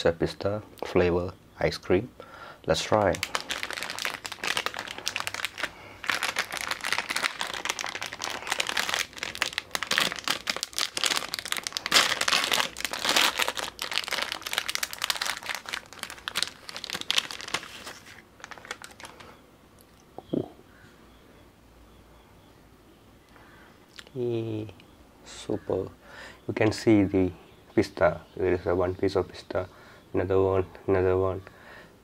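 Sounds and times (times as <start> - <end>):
plastic wrapper crinkling: 2.8 - 19.3.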